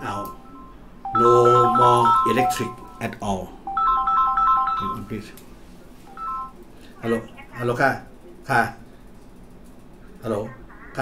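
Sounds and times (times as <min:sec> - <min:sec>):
phone electronic ringtone: 0:00.0 - 0:05.2, 0:06.1 - 0:06.6.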